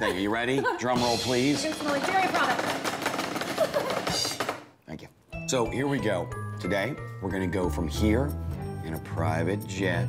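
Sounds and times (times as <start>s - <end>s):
hands drumming on wooden table: 1.1s - 4.8s.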